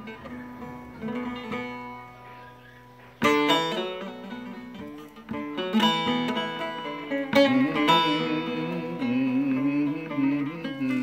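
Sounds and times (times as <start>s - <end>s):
long-necked lute strummed and plucked: 0.0s - 11.0s.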